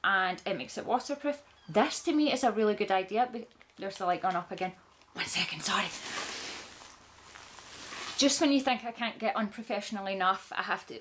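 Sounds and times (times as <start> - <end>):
clothing rustling: 5.6 - 8.4.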